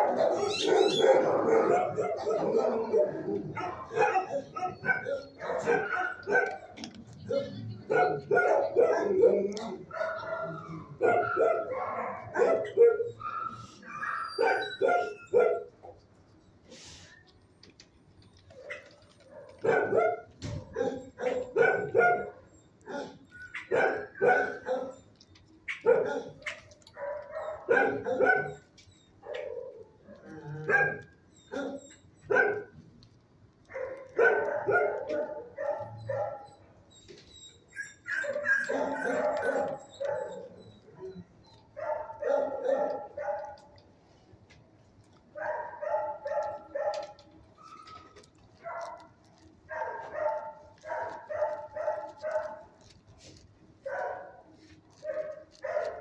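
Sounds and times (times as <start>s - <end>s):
dog barking: 0.0s - 16.0s, 18.5s - 25.0s, 25.7s - 32.8s, 33.7s - 36.6s, 38.1s - 43.8s, 45.3s - 53.0s, 53.8s - 56.0s.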